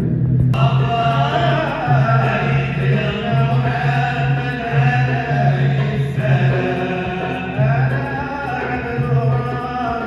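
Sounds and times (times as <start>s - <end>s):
men chanting together: 0.6s - 10.0s.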